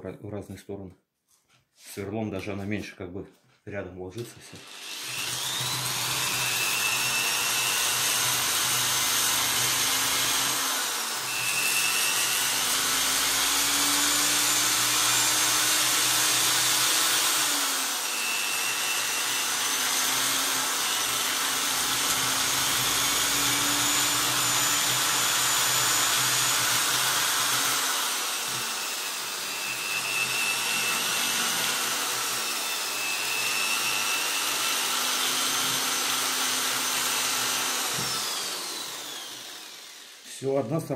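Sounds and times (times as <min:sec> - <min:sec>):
electric drill running: 0:04.4 - 0:40.4.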